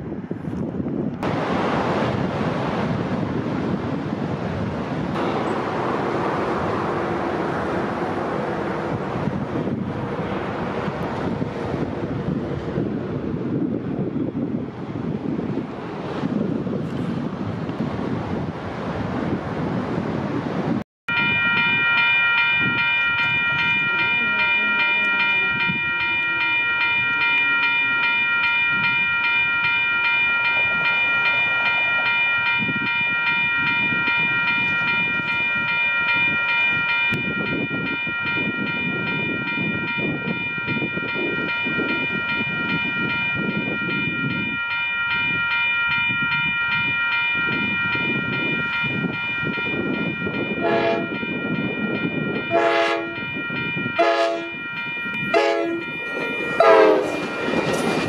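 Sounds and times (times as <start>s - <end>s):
train rumbling: 0.0s - 58.0s
railroad crossing bell ringing: 5.1s - 12.9s, 21.1s - 58.0s
train horn blasts: 50.6s - 51.2s, 52.5s - 53.3s, 54.0s - 54.6s, 55.3s - 56.0s, 56.6s - 57.3s.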